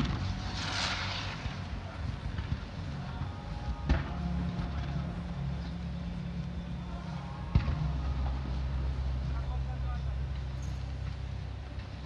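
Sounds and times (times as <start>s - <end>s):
firework bang: 0.0s - 1.6s
low rumble: 0.0s - 12.0s.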